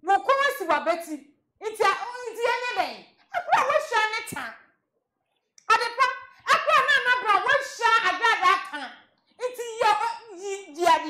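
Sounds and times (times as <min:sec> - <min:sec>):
woman talking excitedly: 0:00.0 - 0:04.7, 0:05.7 - 0:11.0.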